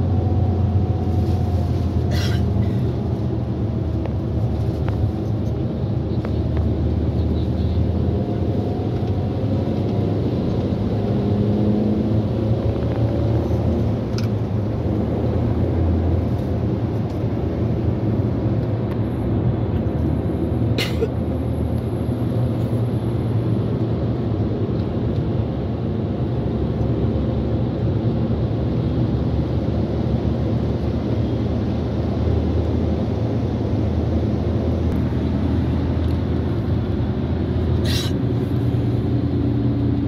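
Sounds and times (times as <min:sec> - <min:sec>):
car engine and road noise: 0:00.0 - 0:40.0.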